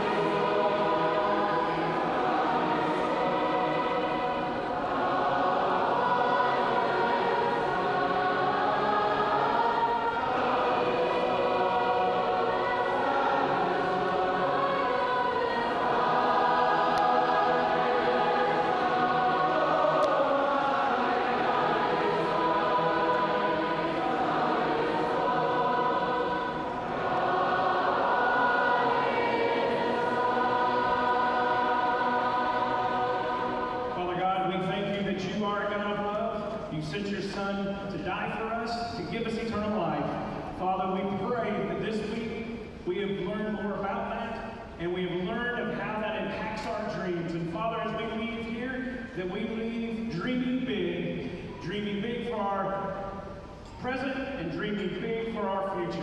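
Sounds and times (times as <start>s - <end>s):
group singing a praise song: 0.0s - 36.0s.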